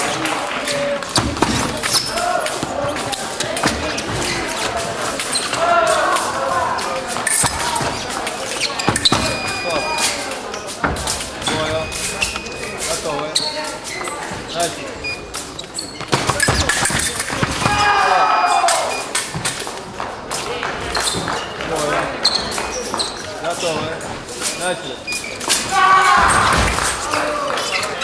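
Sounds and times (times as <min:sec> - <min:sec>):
loud voices shouting: 0:00.0 - 0:08.8, 0:17.5 - 0:19.1, 0:25.6 - 0:28.0.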